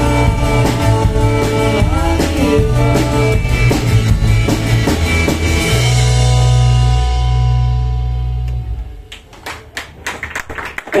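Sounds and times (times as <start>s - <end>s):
live rock song: 0.0s - 8.8s
audience clapping: 8.4s - 11.0s.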